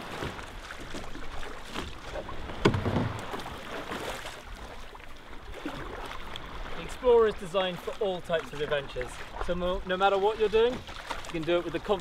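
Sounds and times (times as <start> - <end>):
water splashing around kayak: 0.0 - 12.0.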